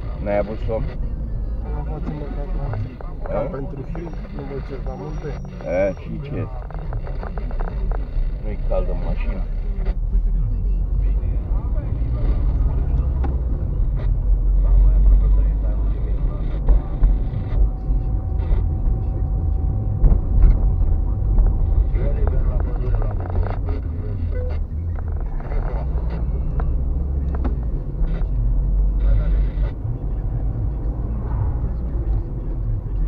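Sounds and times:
engine and road rumble: 0:00.0 - 0:33.0.

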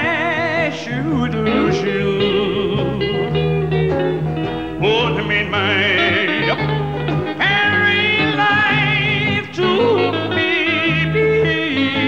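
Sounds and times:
man singing with vibrato: 0:00.0 - 0:03.4, 0:04.6 - 0:12.0
strummed acoustic guitar: 0:00.0 - 0:12.0
backing band: 0:01.2 - 0:12.0.

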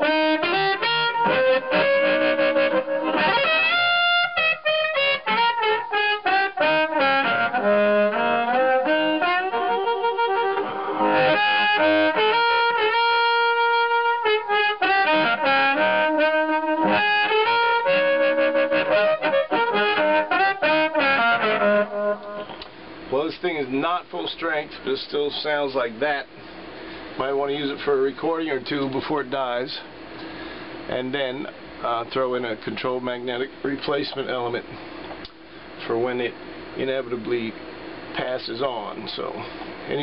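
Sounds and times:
amplified blues harmonica: 0:00.0 - 0:22.6.

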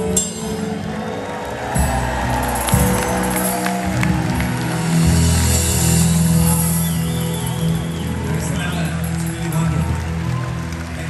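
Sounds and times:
sustained bass notes: 0:00.0 - 0:11.0.

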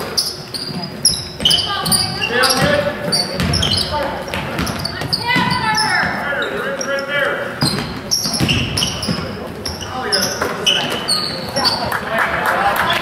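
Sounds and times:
sneakers squeaking: 0:00.0 - 0:12.1, 0:12.7 - 0:13.0
basketball dribbling on wooden floor: 0:00.7 - 0:06.2, 0:07.6 - 0:09.8.

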